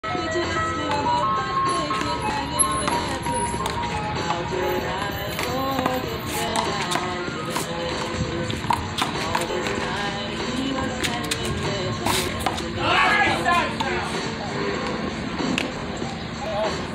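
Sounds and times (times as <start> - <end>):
music playing: 0.0 - 16.9
people's voices: 4.2 - 15.2.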